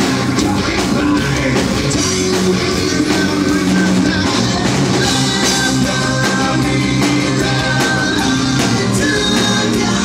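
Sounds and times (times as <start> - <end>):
distorted electric guitars: 0.0 - 10.0
drum kit: 0.0 - 10.0
metal band playing: 0.0 - 10.0.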